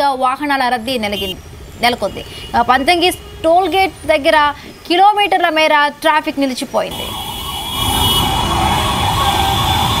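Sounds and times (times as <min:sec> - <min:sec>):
wavering emergency siren: 0:06.9 - 0:10.0.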